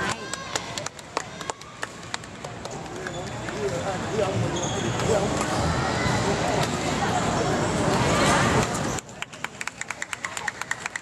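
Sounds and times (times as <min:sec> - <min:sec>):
voices and chatter: 0:00.0 - 0:11.0
court shoes squeaking: 0:02.7 - 0:05.7.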